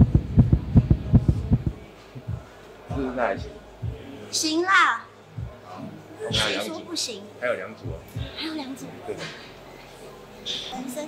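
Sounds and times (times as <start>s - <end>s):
heartbeat thumps: 0.0s - 4.2s, 5.3s - 5.7s, 6.3s - 6.5s, 7.8s - 8.4s.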